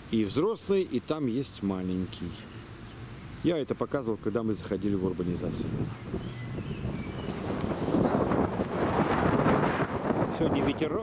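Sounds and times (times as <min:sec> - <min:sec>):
wind buffeting microphone: 0:04.6 - 0:11.0.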